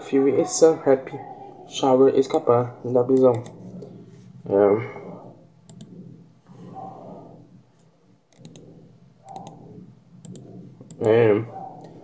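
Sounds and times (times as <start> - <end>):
faint low murmuring: 0.0 - 12.0.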